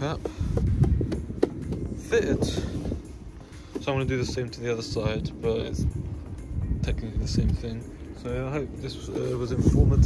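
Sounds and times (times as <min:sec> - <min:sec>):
low rumbling handling noise: 0:00.0 - 0:10.0
sharp taps on plastic: 0:00.2 - 0:01.9.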